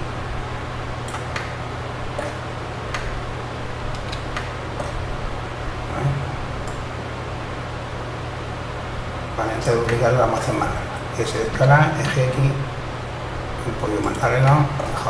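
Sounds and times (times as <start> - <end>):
low hum and hiss: 0.0 - 15.0.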